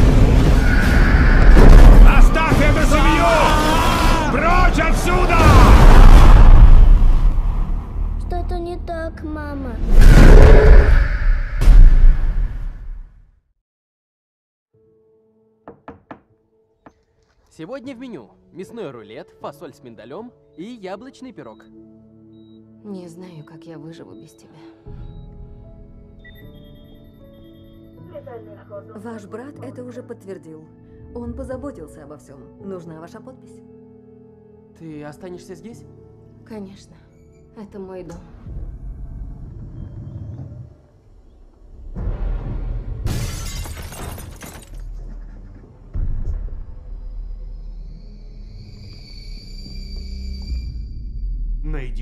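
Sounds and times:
knocking on a door: 15.7 - 16.3.

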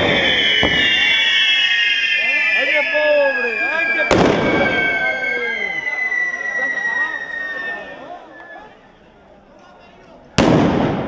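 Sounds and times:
firecracker bang: 0.0 - 2.6, 3.5 - 5.3, 10.4 - 11.0.

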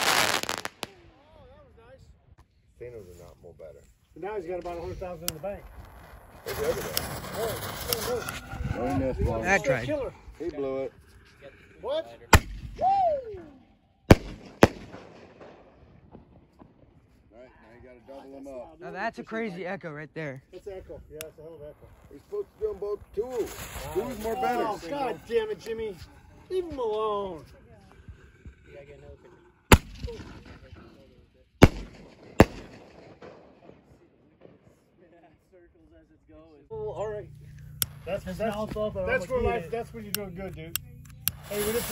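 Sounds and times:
faint firework pops: 4.6 - 8.4
firework bangs with echo: 14.1 - 17.0, 31.6 - 34.9.

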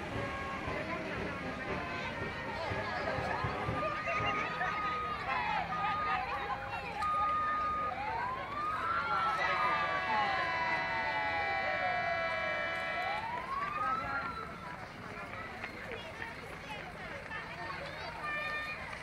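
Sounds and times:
crowd voices: 0.0 - 19.0
siren wailing: 4.5 - 14.6.

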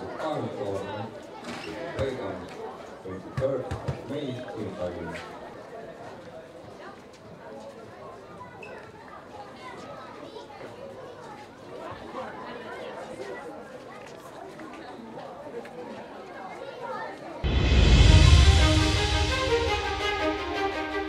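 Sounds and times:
murmur of chatter: 0.0 - 17.6.

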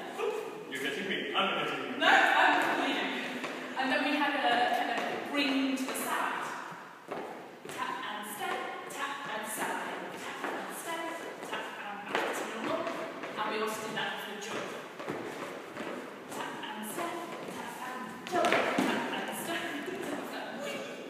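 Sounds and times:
shoes tapping on wooden floor: 11.2 - 20.2
person speaking: 16.3 - 21.0.

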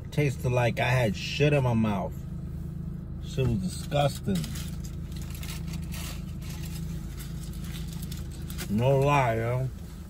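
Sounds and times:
car engine hum in cabin: 0.0 - 10.0
sandwich wrapper rustling: 4.2 - 9.2.

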